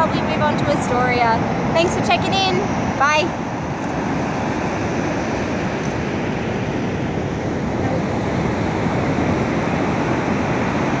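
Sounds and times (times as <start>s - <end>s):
ocean surf on beach: 0.0s - 11.0s.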